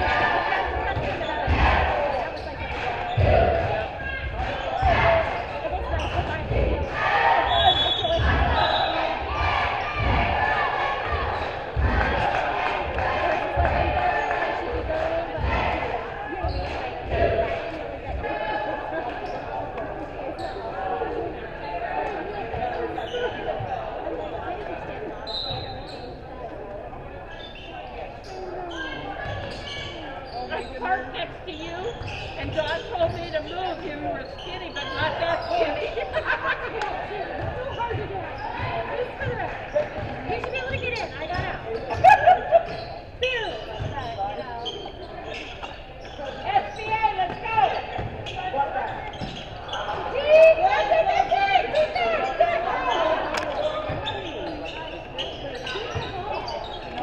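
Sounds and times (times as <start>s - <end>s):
voices calling out: 0.0s - 57.0s.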